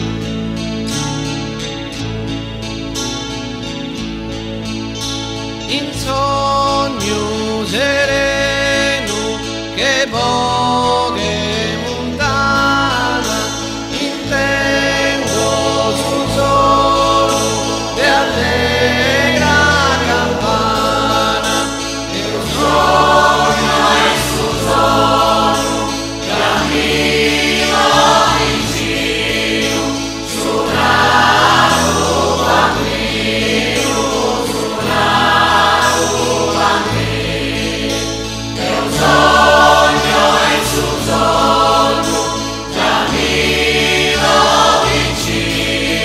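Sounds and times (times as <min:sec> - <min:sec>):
instrumental accompaniment: 0:00.0 - 0:46.0
sustained bass notes: 0:00.0 - 0:46.0
choir singing a slow song: 0:07.0 - 0:46.0.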